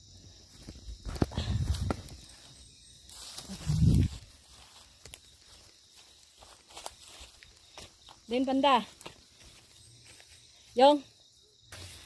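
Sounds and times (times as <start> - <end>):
footsteps on dry leaves: 1.1 - 10.5.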